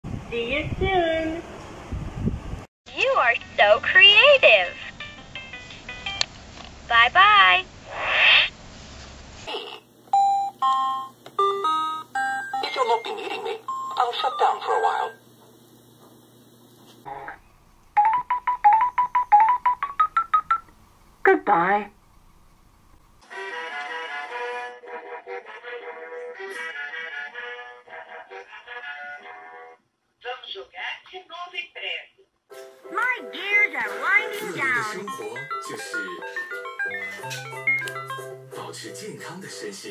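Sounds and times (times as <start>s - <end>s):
electronic noise burst from toy: 7.8s - 8.6s
electronic toy melody: 10.2s - 15.2s, 18.0s - 20.6s, 34.2s - 38.4s
toy laptop electronic beeps: 18.0s - 20.6s.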